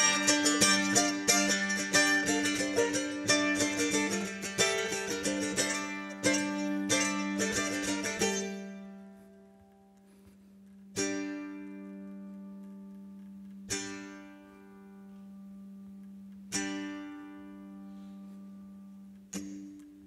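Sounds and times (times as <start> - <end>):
mandolin picked notes: 0.0 - 20.0.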